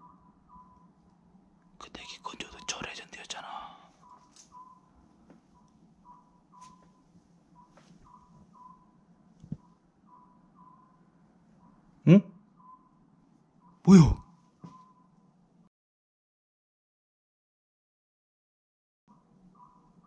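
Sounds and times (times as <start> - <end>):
person whispering: 1.8 - 4.0, 13.9 - 14.2.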